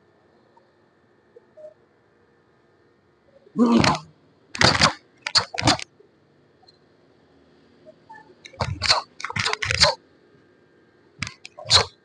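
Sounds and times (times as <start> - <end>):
uniform snapping: 4.6 - 5.8, 8.5 - 10.0, 11.2 - 11.9.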